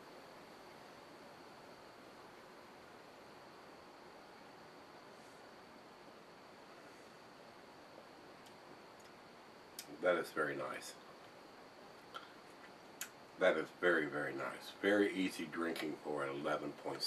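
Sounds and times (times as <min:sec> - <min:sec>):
steady hiss: 0:00.0 - 0:17.0.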